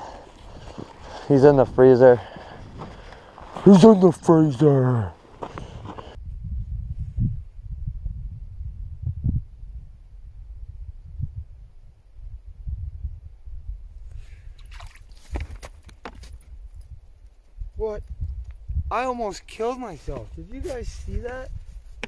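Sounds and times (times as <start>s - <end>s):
wind buffeting microphone: 0.0s - 4.4s, 5.4s - 22.0s.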